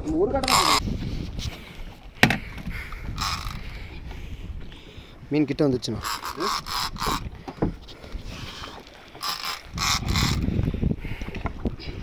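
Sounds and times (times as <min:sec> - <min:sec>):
fishing reel ratcheting: 0:00.4 - 0:00.8, 0:03.2 - 0:03.7, 0:06.0 - 0:07.3, 0:09.1 - 0:10.6.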